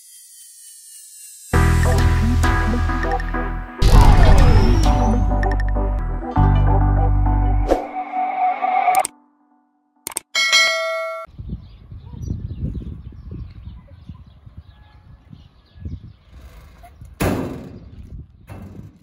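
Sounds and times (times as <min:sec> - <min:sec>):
mouse click sound effect: 0:08.9 - 0:09.2.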